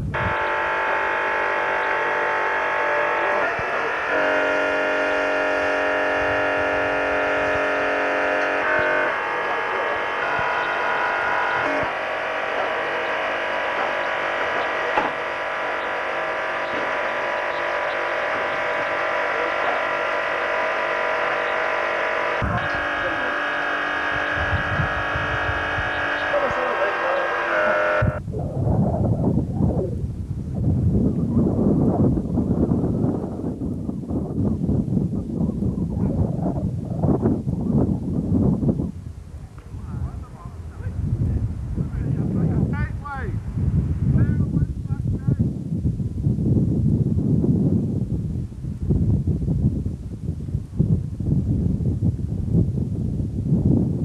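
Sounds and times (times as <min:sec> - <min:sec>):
low outdoor rumble: 0:00.0 - 0:54.0
sustained chord music: 0:00.1 - 0:28.2.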